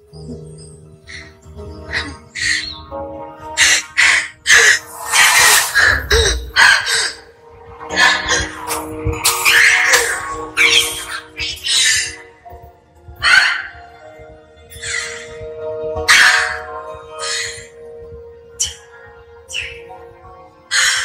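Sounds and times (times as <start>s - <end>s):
sustained music tone: 0.0s - 21.0s
indistinct voices: 3.8s - 7.3s.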